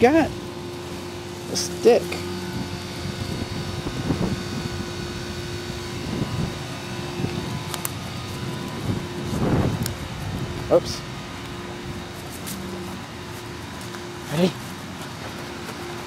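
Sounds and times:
machine hum: 0.0 - 16.0.

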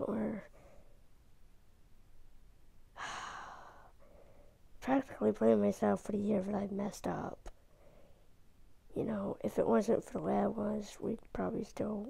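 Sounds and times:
woman speaking: 0.0 - 0.5, 4.8 - 7.5, 9.0 - 12.0
woman sighing: 3.0 - 3.9.

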